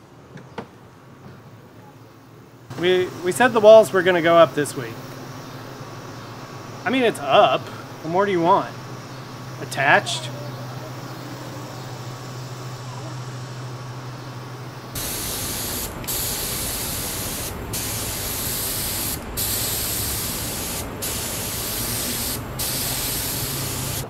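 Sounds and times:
low background hum: 0.0 - 24.0
spray gun hissing: 2.7 - 24.0.

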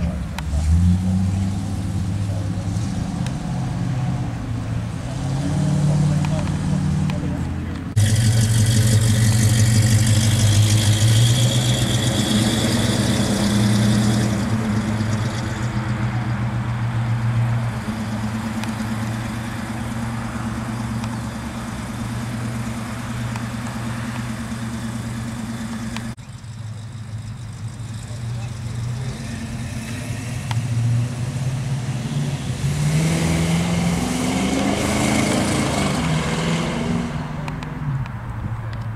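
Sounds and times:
car accelerating away: 0.0 - 38.1
car engine idling: 6.0 - 32.6.

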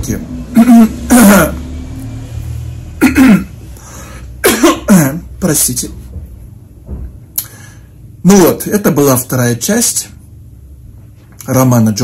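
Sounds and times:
man coughing: 0.6 - 1.6, 3.0 - 3.6, 4.4 - 5.3.

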